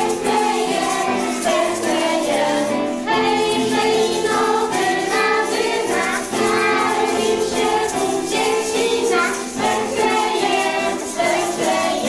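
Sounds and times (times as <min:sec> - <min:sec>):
children singing a carol: 0:00.0 - 0:12.0
hand shakers rattling: 0:00.0 - 0:12.0.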